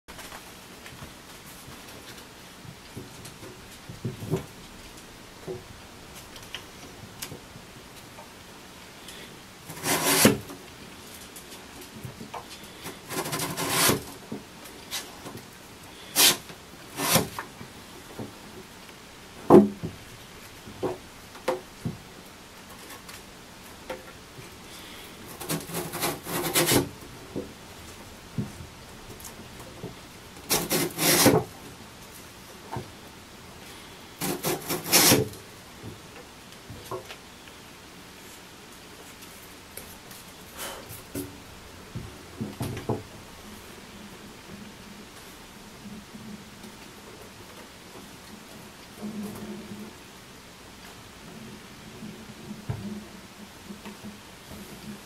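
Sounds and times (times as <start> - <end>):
sandpaper rasping on wood: 9.7 - 10.4, 13.1 - 14.1, 16.1 - 17.4, 25.3 - 26.9, 30.5 - 31.4, 34.2 - 35.4.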